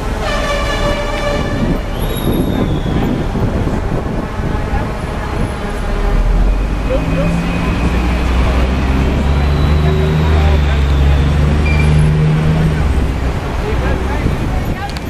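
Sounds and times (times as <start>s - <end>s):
city street traffic: 0.0s - 15.0s
crowd voices: 0.0s - 15.0s.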